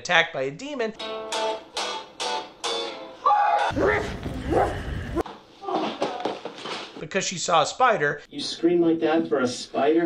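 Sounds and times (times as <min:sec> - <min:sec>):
woman screaming: 0:03.2 - 0:06.0
low rumble: 0:03.7 - 0:05.2.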